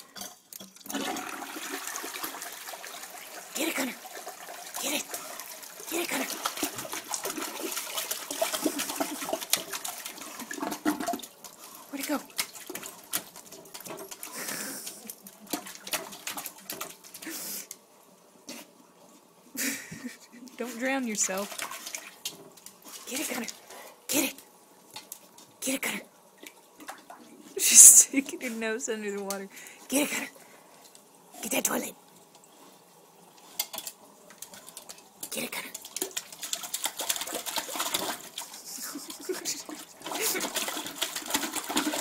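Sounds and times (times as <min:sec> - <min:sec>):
dog splashing water in toilet: 0:00.7 - 0:17.7, 0:20.8 - 0:24.2, 0:33.8 - 0:42.0.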